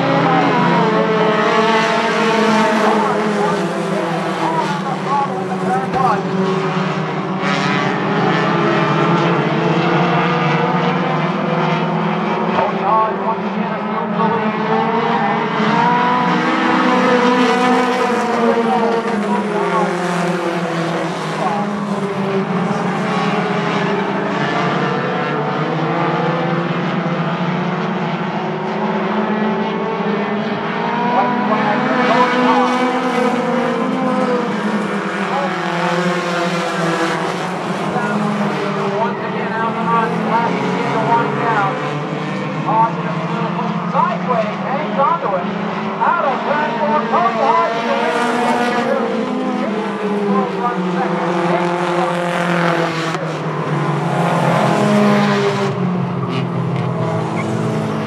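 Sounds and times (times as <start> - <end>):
racing car engines: 0.0 - 58.0.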